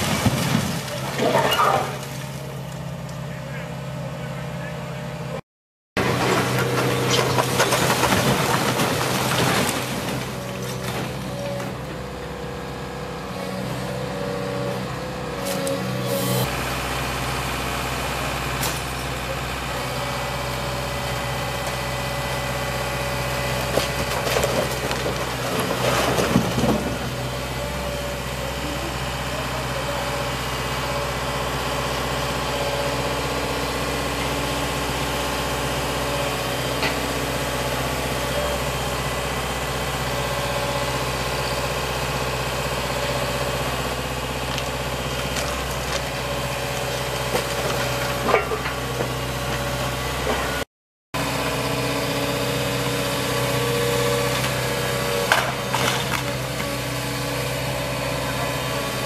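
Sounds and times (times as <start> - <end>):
excavator diesel engine running: 0.0 - 5.4, 6.0 - 59.0.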